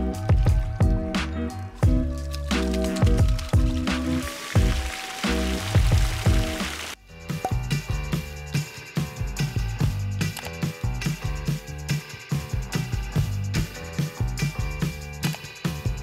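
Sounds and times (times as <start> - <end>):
background music with steady beat: 0.0 - 16.0.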